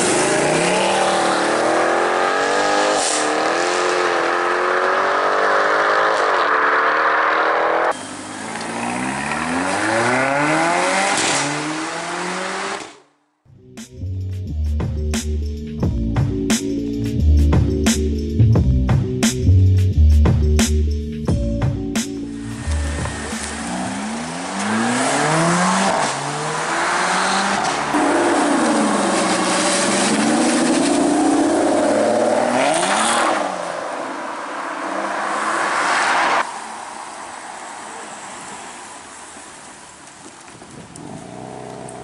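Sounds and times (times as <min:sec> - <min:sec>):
sports car engines revving: 0:00.0 - 0:13.0, 0:22.2 - 0:36.4.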